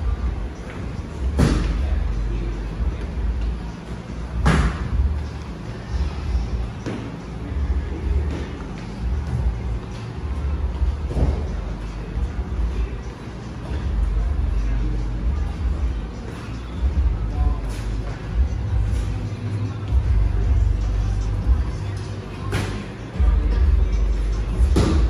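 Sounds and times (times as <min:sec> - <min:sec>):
music with heavy bass: 0:09.0 - 0:25.0.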